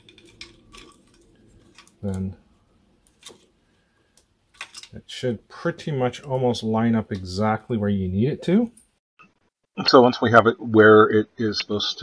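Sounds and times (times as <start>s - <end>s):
plastic clicks and scrapes: 0.0s - 2.2s, 4.2s - 5.0s.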